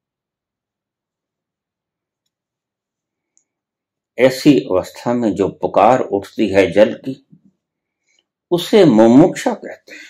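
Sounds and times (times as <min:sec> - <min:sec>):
very faint clicks: 0:02.1 - 0:03.6.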